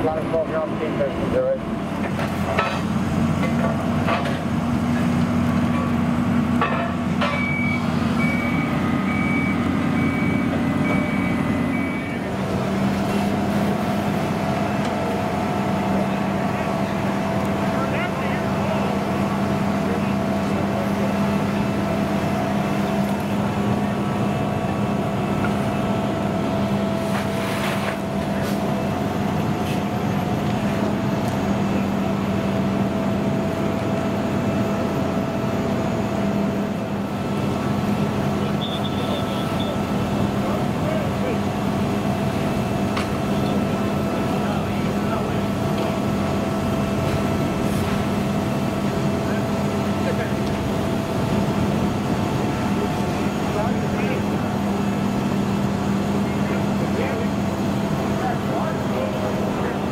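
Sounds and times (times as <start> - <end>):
diesel engines humming: 0.0 - 59.9
reversing alarm beeping: 7.2 - 12.3, 38.4 - 40.0.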